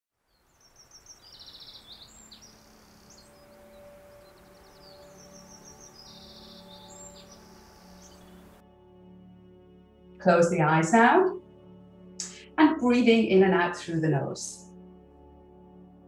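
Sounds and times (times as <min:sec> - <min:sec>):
birdsong high chirps: 0:00.2 - 0:08.6.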